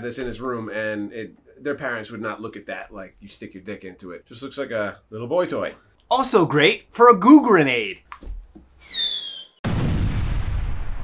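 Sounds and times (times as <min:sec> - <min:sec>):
falling bomb whistle: 0:08.8 - 0:09.6
rumbling explosion: 0:09.6 - 0:11.0.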